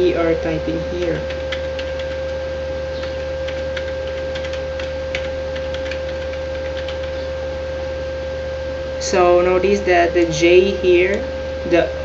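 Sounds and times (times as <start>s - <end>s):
loud electrical hum: 0.0s - 12.0s
computer keyboard keys clicking: 1.0s - 2.4s, 3.0s - 7.2s.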